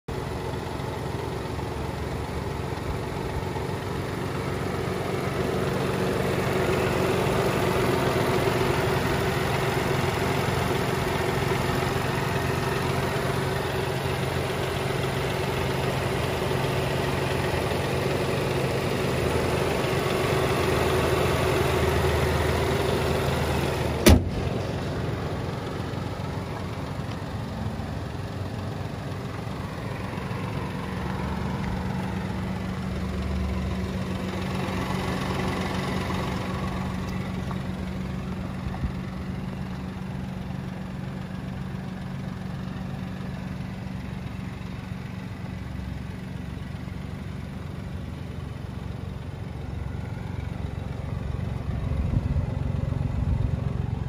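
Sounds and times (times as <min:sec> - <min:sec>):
car engine idling: 0:00.1 - 0:54.0
car bonnet shutting bang: 0:24.0 - 0:24.6.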